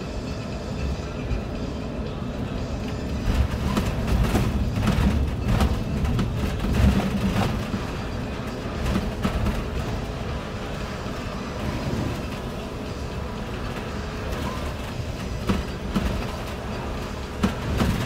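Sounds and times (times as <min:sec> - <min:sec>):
bus body rattling over bumps: 0:00.0 - 0:18.0
bus engine and tyres rumbling: 0:00.0 - 0:18.0.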